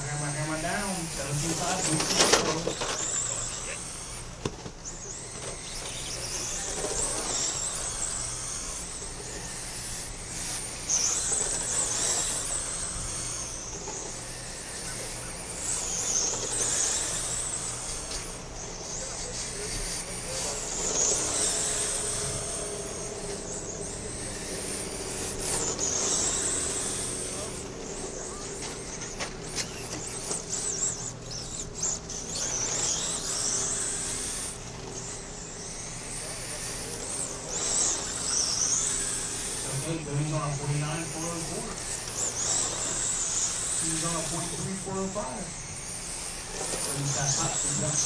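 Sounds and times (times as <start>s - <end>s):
rc race cars whining: 0.0s - 48.0s.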